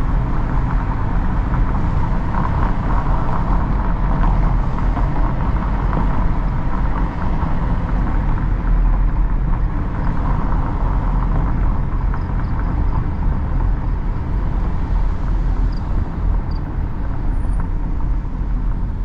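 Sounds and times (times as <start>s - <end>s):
in-cabin road and engine rumble: 0.0s - 19.0s.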